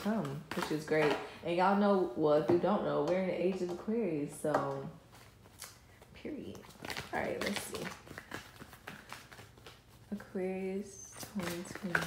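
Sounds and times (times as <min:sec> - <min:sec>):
cards being shuffled: 0:05.1 - 0:10.2, 0:11.1 - 0:12.0.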